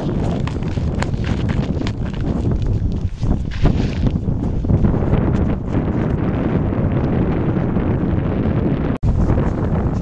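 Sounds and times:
footsteps on snowy ice: 0.0 - 6.4
wind buffeting microphone: 0.0 - 10.0.

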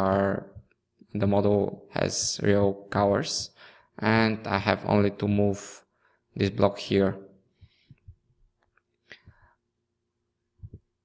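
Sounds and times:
person speaking: 0.0 - 5.8, 6.4 - 7.2.

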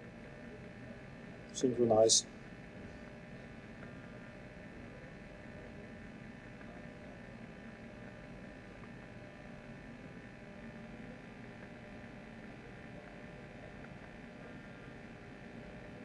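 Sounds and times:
electrical hum and hiss: 0.0 - 16.0.

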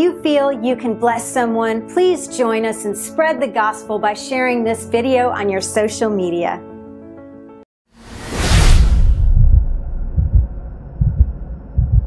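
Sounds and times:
loud whoosh: 8.0 - 11.9
deep bass thuds: 8.6 - 12.0.

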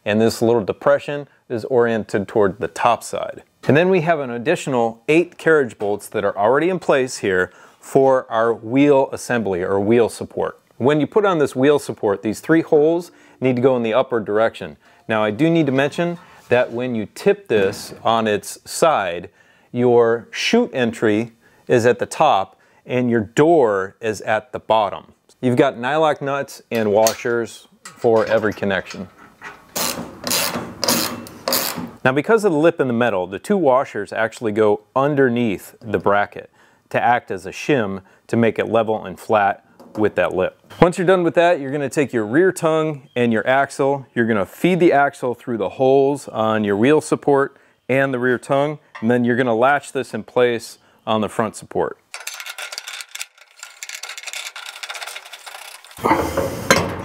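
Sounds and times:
steel parts clinking and rattling: 27.0 - 29.9, 52.1 - 57.0
loud metal clunk: 56.0 - 57.0.

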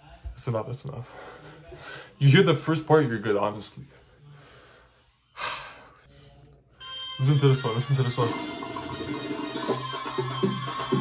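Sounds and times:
music: 6.8 - 11.0.

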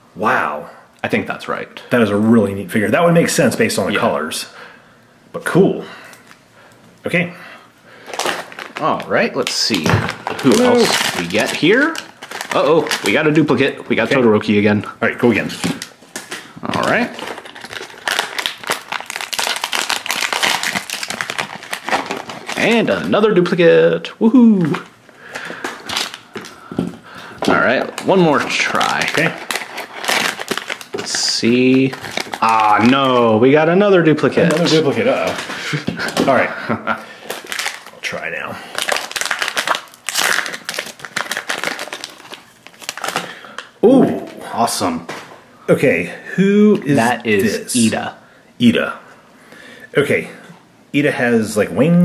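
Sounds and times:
foil packet crinkling: 7.9 - 14.2, 15.2 - 23.8, 24.6 - 33.4, 34.2 - 43.7.

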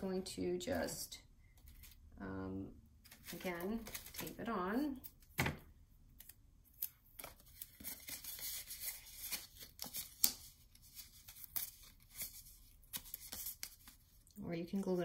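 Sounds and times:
tape and paper crackling: 3.0 - 5.2, 6.1 - 15.0.

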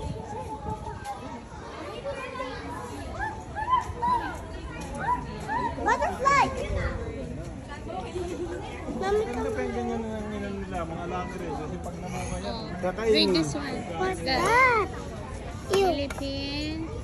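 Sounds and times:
people chattering: 0.0 - 17.0
children's voices: 0.2 - 7.1, 13.9 - 17.0.

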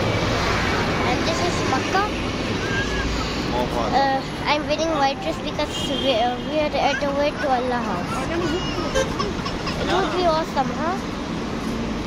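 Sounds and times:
steady roar with low rumble: 0.0 - 4.6
voices talking: 0.8 - 11.2.

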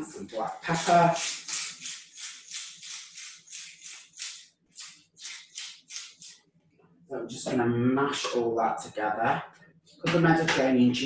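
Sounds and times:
pepper mill grinding: 0.7 - 6.4.

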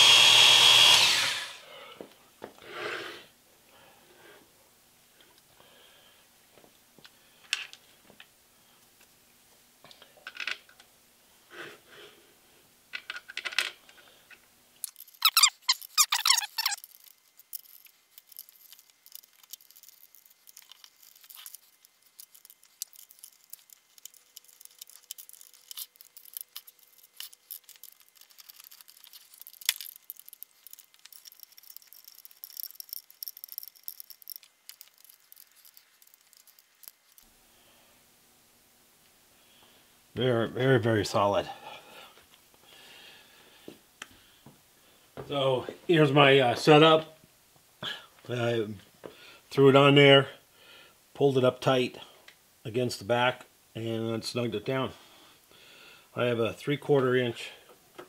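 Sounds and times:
hex key and steel hardware rattling: 14.8 - 37.2.

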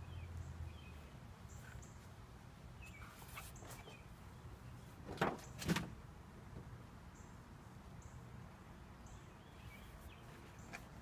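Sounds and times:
low outdoor background: 0.0 - 11.0
poster board rustling: 4.9 - 6.0.

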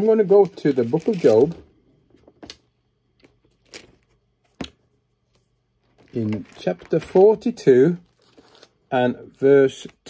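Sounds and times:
pages being turned: 0.0 - 1.6, 5.3 - 8.8.

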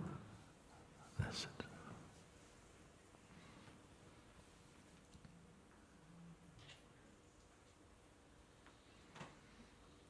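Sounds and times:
man's whispery breath: 0.0 - 2.3.

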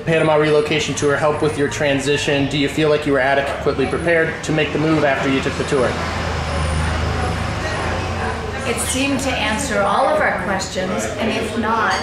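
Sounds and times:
passing vehicle rumble: 0.8 - 11.5.

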